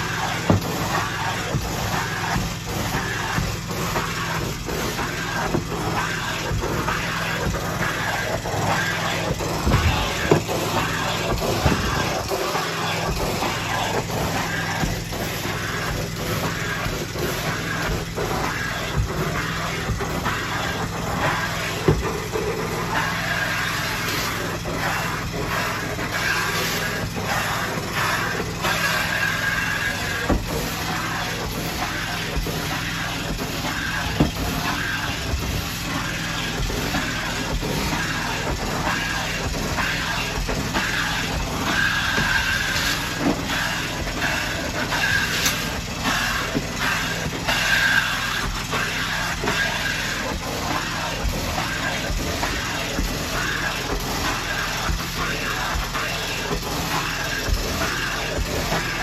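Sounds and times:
mechanical hum: 0.0s - 59.0s.

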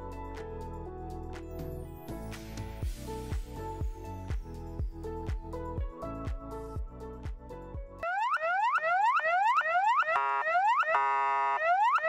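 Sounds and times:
ambulance siren whooping: 8.0s - 12.0s
siren horn blast: 8.0s - 12.0s.

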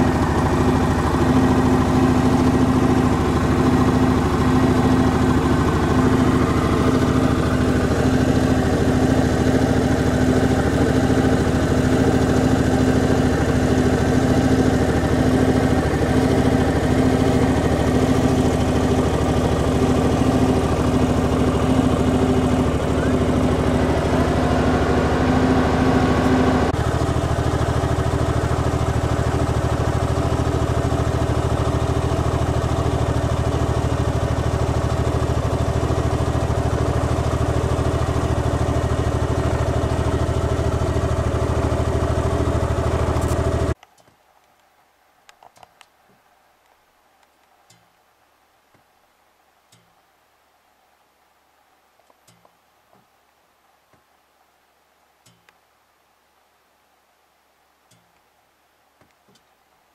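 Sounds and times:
engine idling: 0.0s - 43.8s.

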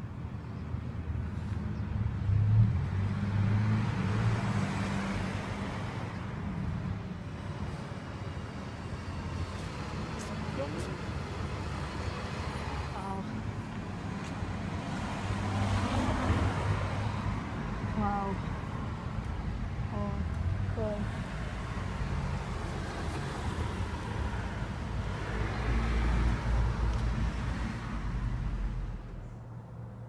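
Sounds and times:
cars passing: 0.0s - 30.0s.

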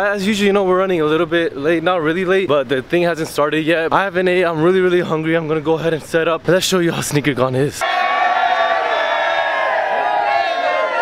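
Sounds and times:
crowd cheering and yelling: 7.8s - 11.0s.

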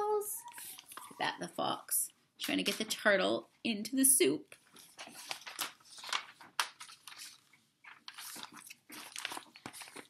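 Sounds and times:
paper rustling pages turned: 4.5s - 10.0s.

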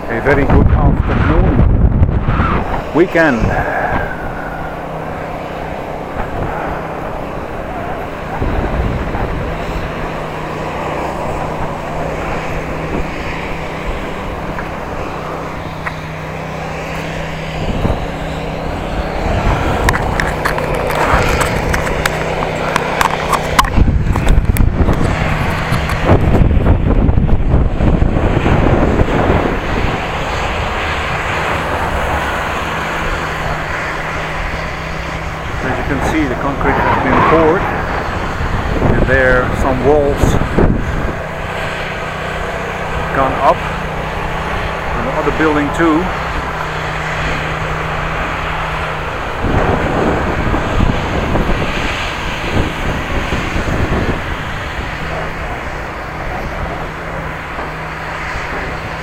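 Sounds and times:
steady low hum: 0.0s - 59.0s
tyre noise on paving: 0.0s - 59.0s
wind rumbling on microphone: 0.0s - 59.0s.

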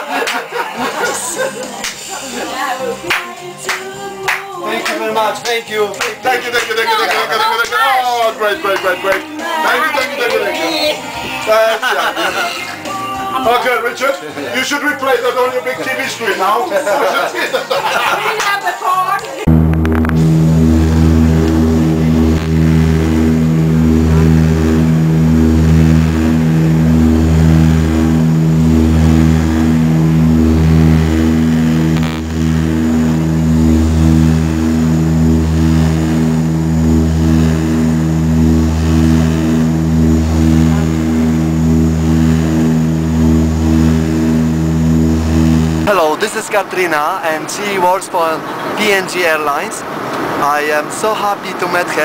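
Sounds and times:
propeller plane engine droning: 19.5s - 46.8s.

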